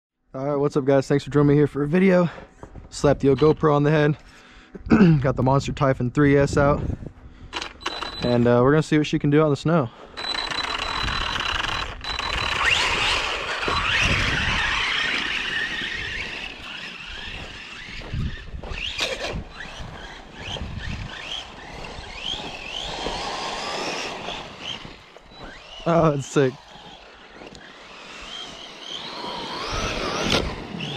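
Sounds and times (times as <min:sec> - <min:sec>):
electric motor whining: 0:10.1 - 0:30.9
car driving through snow: 0:19.7 - 0:25.8.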